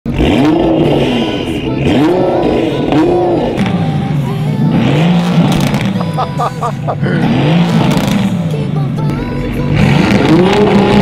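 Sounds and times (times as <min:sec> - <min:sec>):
car engine revving: 0:00.1 - 0:11.0.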